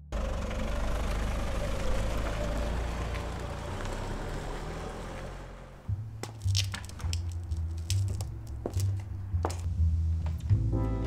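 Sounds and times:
car engine rumbling: 0:00.0 - 0:11.0.

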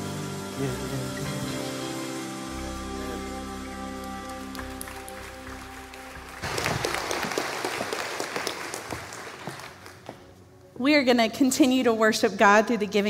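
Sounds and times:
band holding a chord: 0:00.0 - 0:06.4
congregation applauding: 0:03.0 - 0:10.2.

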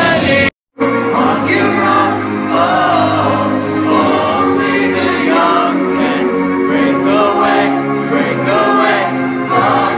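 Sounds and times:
people singing long notes: 0:00.0 - 0:09.9.

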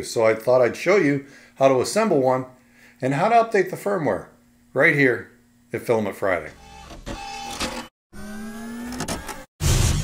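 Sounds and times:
stepper motors whirring: 0:06.5 - 0:09.5.

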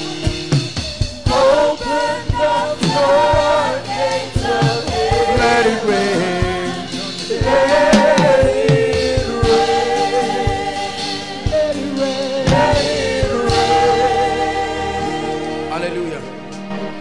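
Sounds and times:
choir singing gospel: 0:00.0 - 0:17.0.

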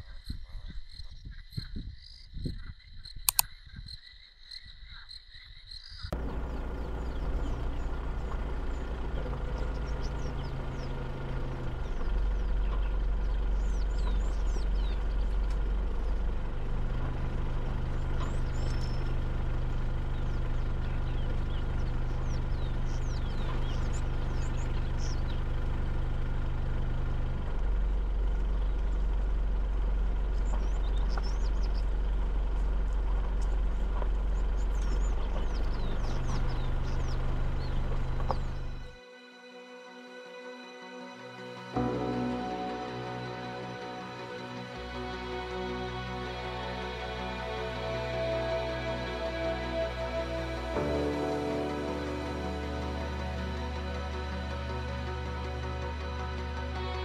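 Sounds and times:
faint bird chirps: 0:00.0 - 0:16.3
vehicle engine droning: 0:06.1 - 0:39.0, 0:41.2 - 0:57.0.

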